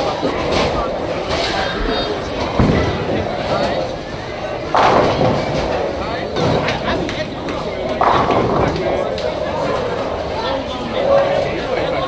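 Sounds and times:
bowling ball rumbling: 0:00.0 - 0:11.8
background voices chatter: 0:00.0 - 0:12.0.

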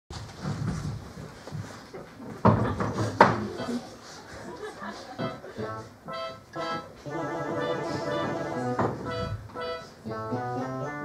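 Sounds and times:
murmur of voices: 0:02.8 - 0:09.3.

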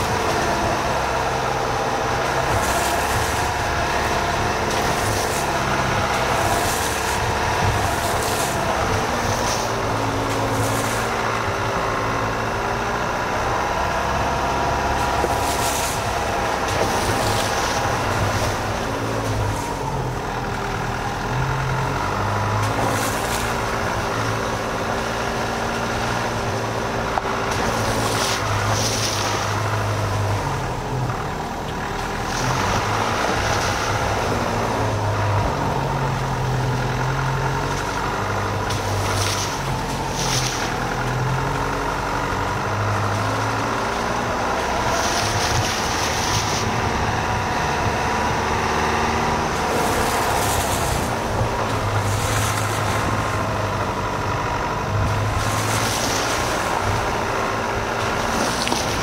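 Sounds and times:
car engine driving slowly: 0:00.0 - 0:59.0
tyres splashing through puddles: 0:00.0 - 0:59.0.

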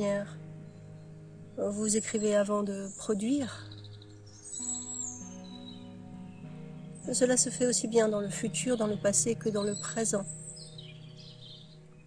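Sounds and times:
ambient music with held tones: 0:00.0 - 0:12.0.

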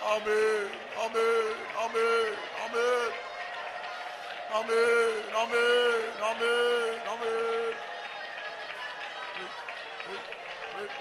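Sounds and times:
congregation praying aloud: 0:00.0 - 0:11.0.

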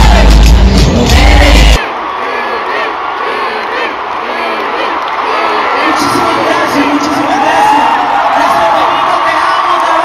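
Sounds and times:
stadium crowd cheering and yelling: 0:00.0 - 0:10.0.

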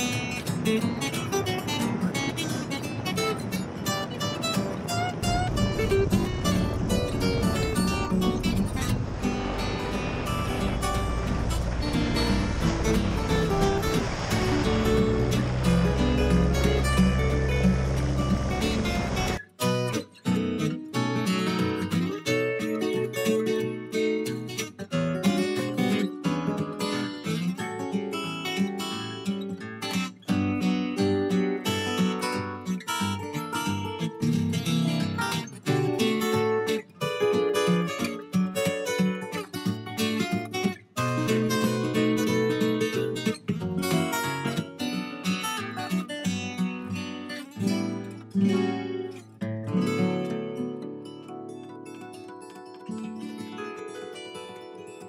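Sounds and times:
acoustic guitar music: 0:00.0 - 0:55.0.

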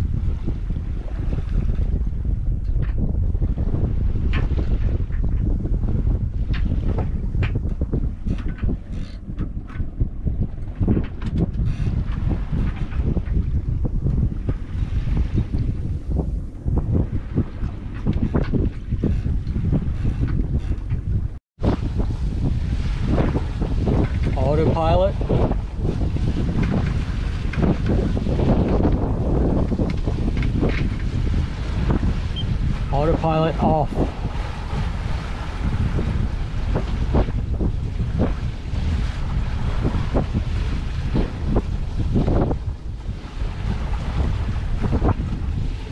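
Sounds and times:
water washing along boat hull: 0:00.0 - 0:45.9
wind buffeting microphone: 0:00.0 - 0:45.9.

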